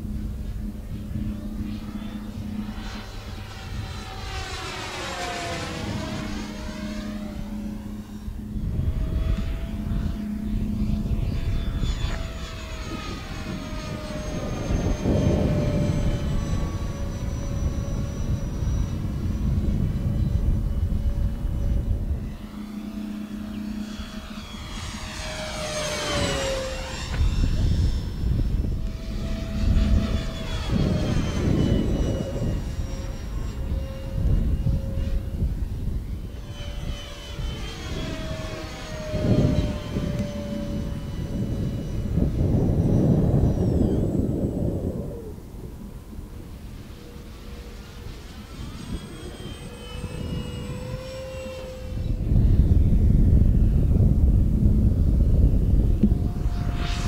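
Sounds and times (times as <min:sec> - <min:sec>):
model plane motor whining: 0:00.0 - 0:57.0.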